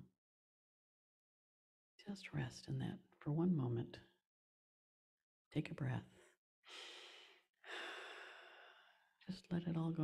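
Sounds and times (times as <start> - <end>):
person breathing deeply: 6.7 - 9.2.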